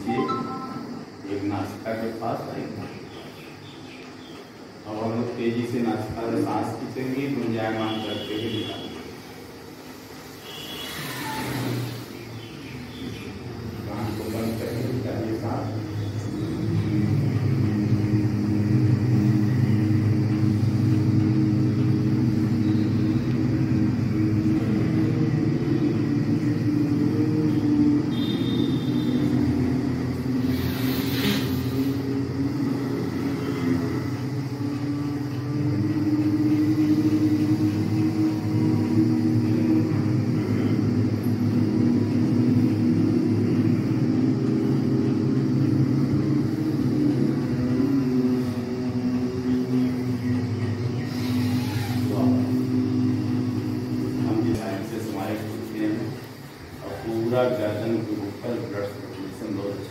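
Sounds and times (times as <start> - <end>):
group of people humming: 0.0 - 59.9
short hiss: 30.5 - 31.7.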